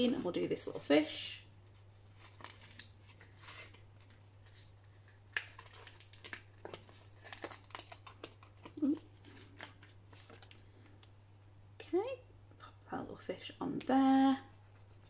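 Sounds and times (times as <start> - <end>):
paper and plastic crinkling: 1.6 - 11.0.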